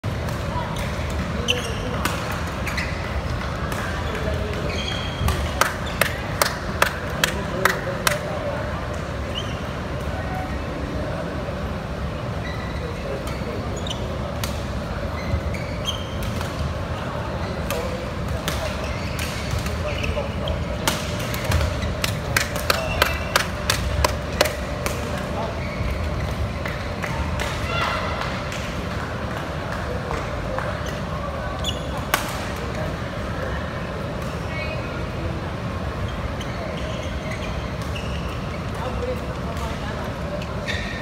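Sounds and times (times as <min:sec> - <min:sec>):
murmur of voices: 0:00.0 - 0:41.0
background chatter: 0:00.1 - 0:41.0.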